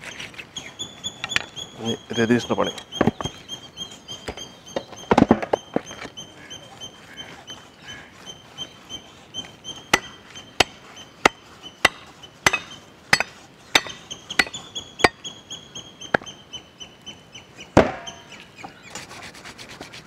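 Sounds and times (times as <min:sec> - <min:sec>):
knife chopping on wooden stump: 0:09.9 - 0:15.2, 0:17.8 - 0:18.2.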